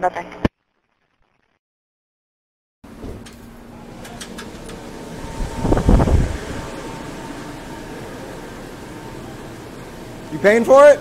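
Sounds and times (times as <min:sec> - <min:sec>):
store fans and coolers humming: 0:02.9 - 0:11.0.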